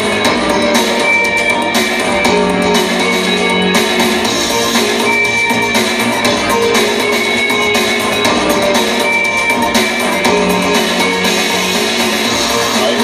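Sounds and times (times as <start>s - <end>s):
synthpop band playing: 0.0s - 13.0s.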